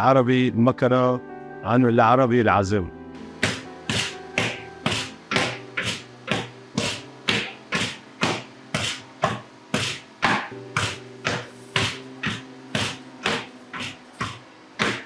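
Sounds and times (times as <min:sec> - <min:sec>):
background music: 0:00.0 - 0:15.0
wooden pestles pounding dull thuds: 0:03.4 - 0:15.0.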